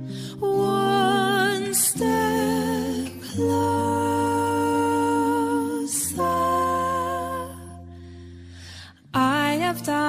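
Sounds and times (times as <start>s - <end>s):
acoustic accompaniment: 0.0s - 10.0s
breathy sound: 7.8s - 9.1s.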